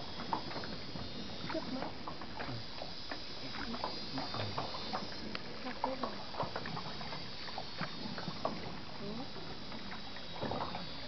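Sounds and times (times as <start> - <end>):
steady hiss: 0.0 - 11.0
water sloshing around boat: 0.0 - 11.0.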